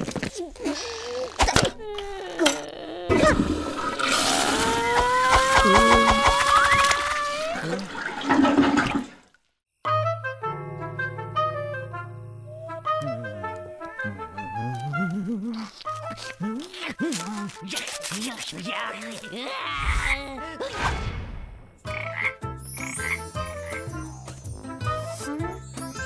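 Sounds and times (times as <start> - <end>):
cartoon toilet flush: 3.1 - 9.4
soft background music: 9.9 - 20.6.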